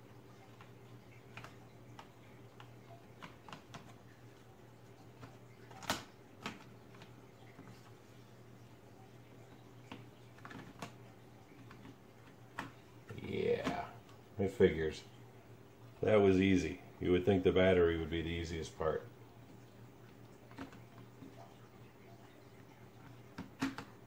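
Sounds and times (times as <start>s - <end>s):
plastic clicks and taps: 23.3s - 24.0s.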